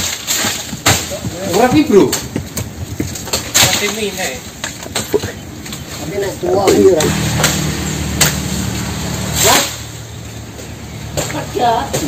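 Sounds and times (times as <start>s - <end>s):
chainsaw engine running: 6.4s - 9.9s.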